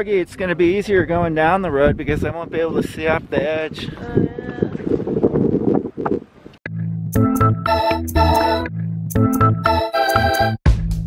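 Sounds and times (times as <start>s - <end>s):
wind buffeting microphone: 0.0s - 6.6s
organ music: 7.0s - 10.6s.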